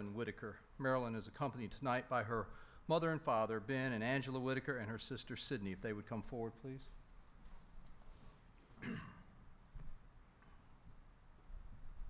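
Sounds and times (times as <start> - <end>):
man clearing his throat: 8.8 - 9.3.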